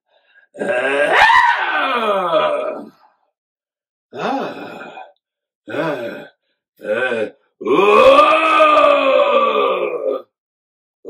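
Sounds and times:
man grunting and groaning: 0.6 - 3.0, 4.1 - 5.1, 5.7 - 10.4.

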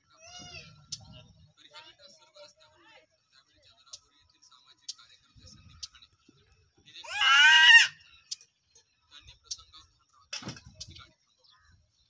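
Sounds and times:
high-pitched cry: 7.0 - 8.0.

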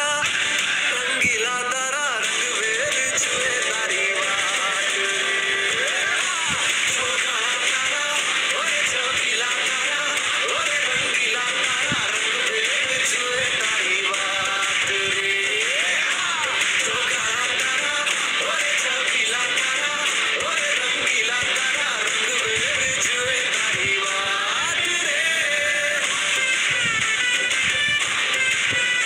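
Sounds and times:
song with sung melody: 0.0 - 29.0.

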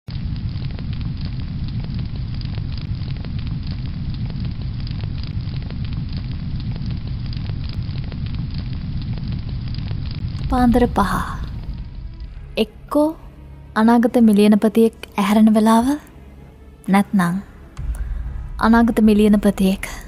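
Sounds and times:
fire crackling and popping: 0.0 - 20.0.

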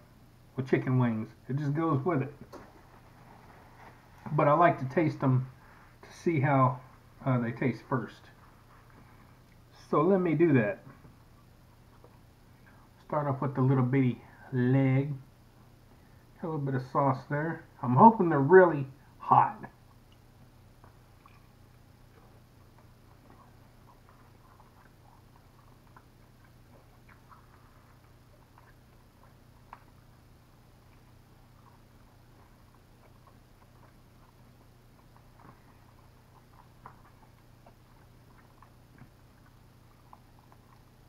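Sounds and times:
low room hum: 0.0 - 41.0
chewing and mouth sounds: 8.3 - 9.9, 10.8 - 13.0, 19.6 - 41.0.

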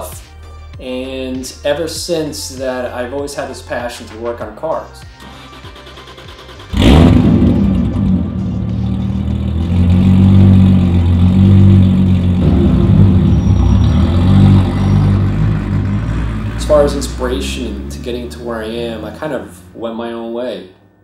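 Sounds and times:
car engine through exhaust: 6.6 - 19.8.

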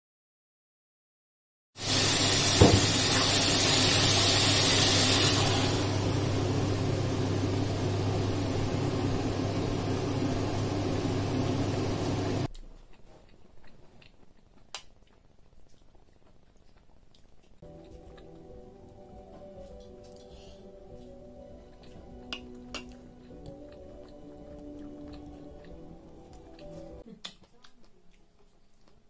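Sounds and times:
food sizzling in a frying pan: 1.8 - 12.5
low hum: 5.5 - 12.5.

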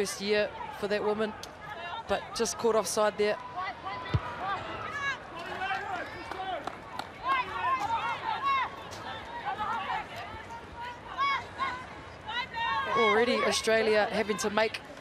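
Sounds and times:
players shouting: 7.2 - 14.9.

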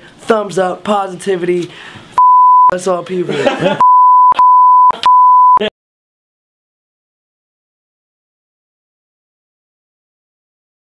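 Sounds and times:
high-pitched censor bleep: 2.2 - 2.7, 3.8 - 5.7.

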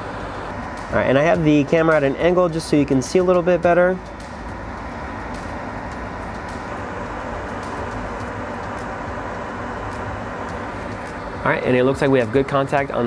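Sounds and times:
fan noise: 0.0 - 13.0.

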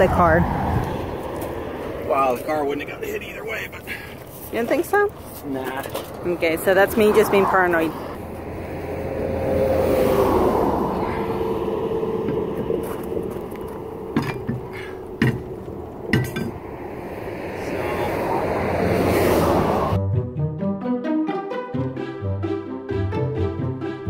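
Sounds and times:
highway traffic passing: 0.0 - 20.0
metallic clinks and knocks: 14.1 - 16.6.

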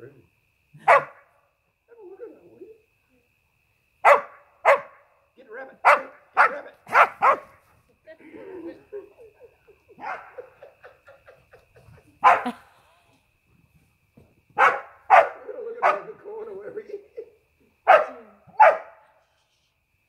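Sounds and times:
dog barking: 0.8 - 1.2, 4.0 - 5.0, 5.8 - 7.6, 10.0 - 10.5, 12.2 - 12.6, 14.6 - 16.2, 17.9 - 19.1.

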